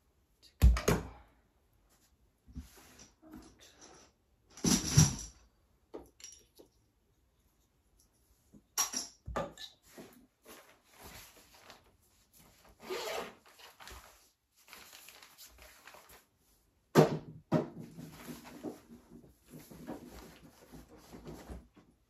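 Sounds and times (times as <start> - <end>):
toys and clutter being moved: 1.9 - 22.0.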